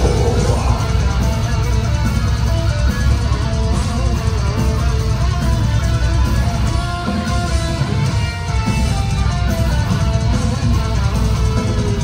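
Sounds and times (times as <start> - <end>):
live death metal band: 0.0 - 12.0.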